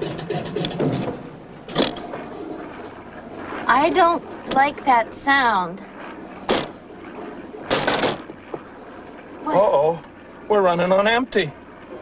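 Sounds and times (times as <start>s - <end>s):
small plane engine sputtering: 0.0s - 12.0s
steady low drone: 0.0s - 12.0s.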